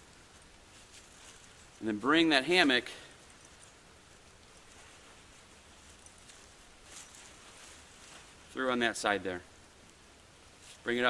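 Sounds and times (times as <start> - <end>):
nylon fabric rustling: 0.6 - 2.0, 2.7 - 8.9.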